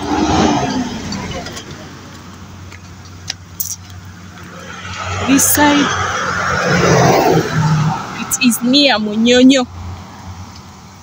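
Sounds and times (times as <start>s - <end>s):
car passing close by: 0.0s - 2.0s, 4.1s - 8.7s.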